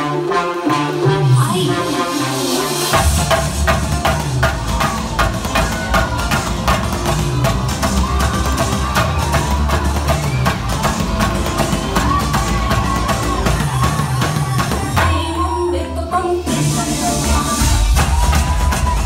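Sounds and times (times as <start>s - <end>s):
dance music: 0.0s - 19.0s.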